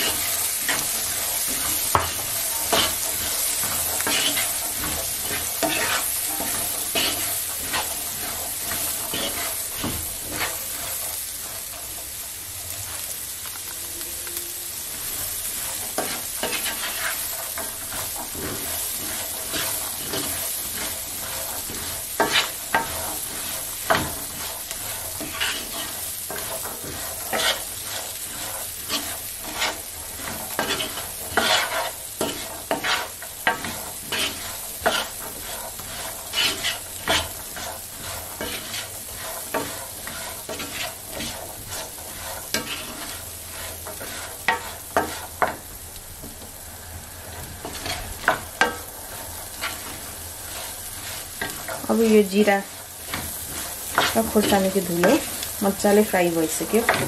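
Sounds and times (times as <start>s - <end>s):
wooden spoon scraping a pan: 0.0s - 13.6s, 14.7s - 46.6s, 47.3s - 57.0s
food sizzling in oil: 0.0s - 57.0s.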